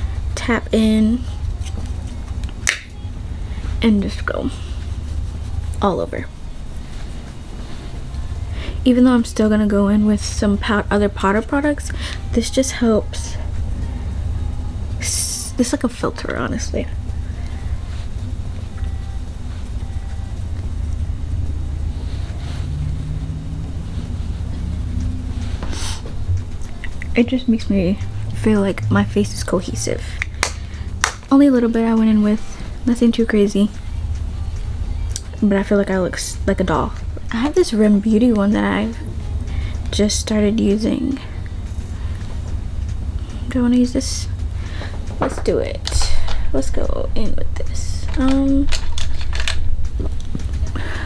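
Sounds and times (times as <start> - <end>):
low rumble: 0.0 - 51.0
steady low hum: 0.0 - 51.0
powder brush sweeping skin: 4.6 - 8.3.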